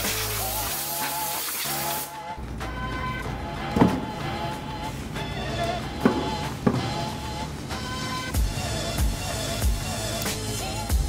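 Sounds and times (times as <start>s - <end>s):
air blow gun hissing: 0.0s - 2.2s
background music: 0.0s - 11.0s.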